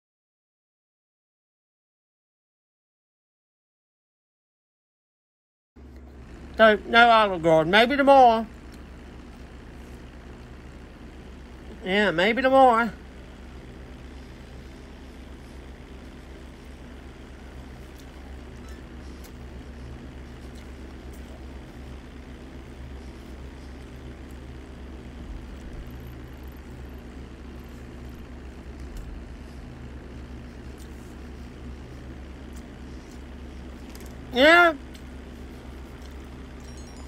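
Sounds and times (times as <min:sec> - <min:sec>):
steady low hum: 0:05.8 - 0:37.0.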